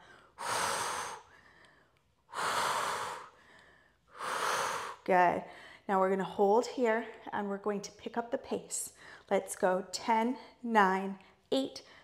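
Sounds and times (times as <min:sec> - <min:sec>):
woman exhaling forcefully: 0:00.4 - 0:01.3, 0:02.3 - 0:03.3, 0:04.2 - 0:05.0.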